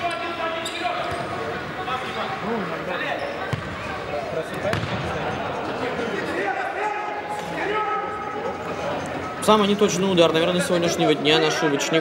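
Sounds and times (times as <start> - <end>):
players calling out in hall: 0.0 - 12.0
ball thudding on wooden court: 4.7 - 5.0.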